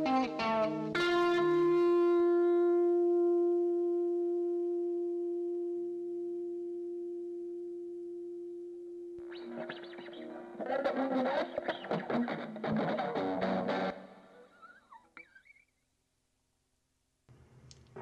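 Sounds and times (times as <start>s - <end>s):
guitar music: 0.0s - 8.2s, 9.1s - 15.6s
guitar note ringing: 0.0s - 15.6s.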